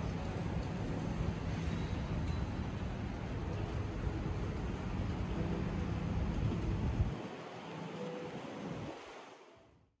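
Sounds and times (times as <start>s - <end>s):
city street ambience: 0.0s - 9.9s.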